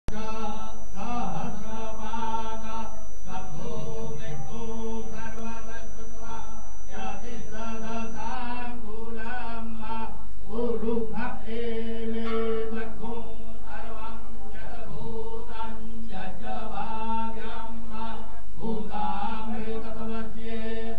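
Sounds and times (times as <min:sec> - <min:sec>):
devotional chanting: 0:00.1 - 0:20.9.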